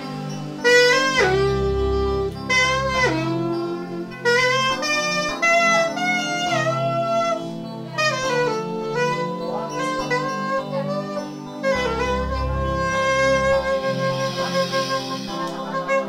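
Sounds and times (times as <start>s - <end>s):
mini saxophone melody: 0.0s - 16.0s
soft sustained backing chords: 0.0s - 16.0s.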